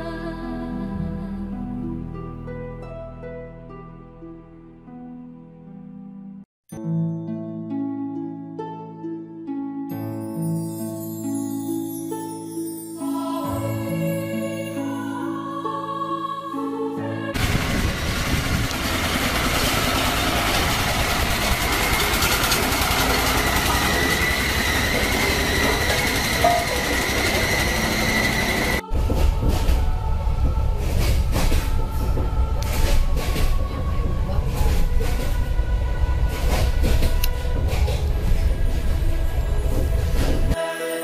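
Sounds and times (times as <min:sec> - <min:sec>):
tractor engine with high whine: 0:17.3 - 0:29.2
train rumble from inside carriage: 0:17.3 - 0:40.6
wheels knocking over rail joints: 0:17.4 - 0:29.8.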